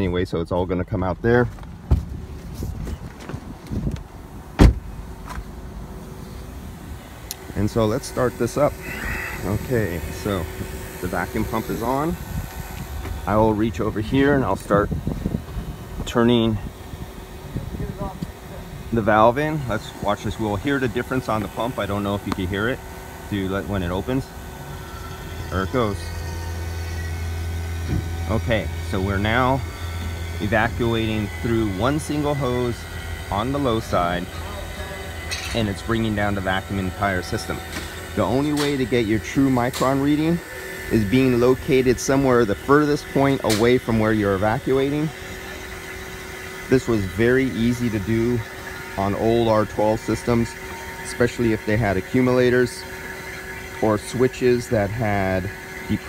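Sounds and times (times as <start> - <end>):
low steady hum: 0.0 - 56.0
car door shutting thud: 1.8 - 2.2, 4.6 - 5.5, 27.9 - 28.2
car door unlatching: 2.8 - 5.5.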